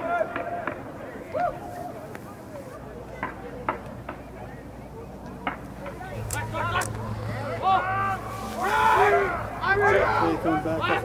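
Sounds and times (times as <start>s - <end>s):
people shouting: 6.0s - 11.0s.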